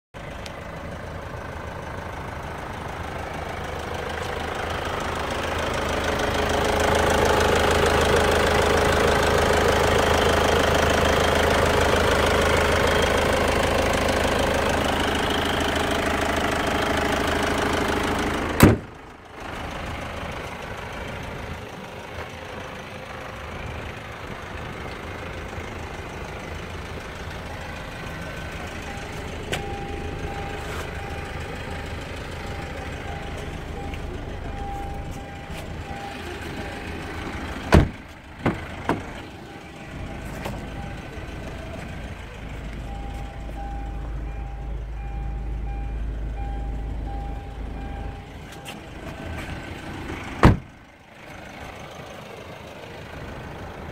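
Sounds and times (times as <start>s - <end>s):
diesel engine idling clatter: 0.2s - 53.9s.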